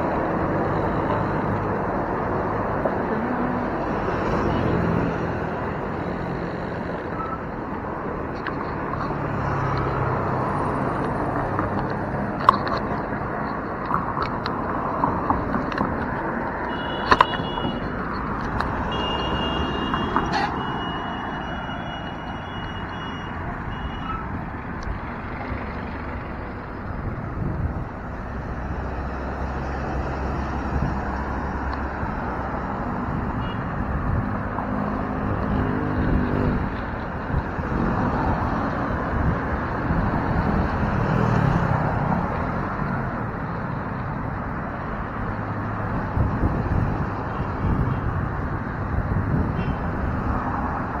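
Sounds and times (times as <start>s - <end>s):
passing vehicle engines: 0.0s - 51.0s
wind and road noise: 0.0s - 51.0s.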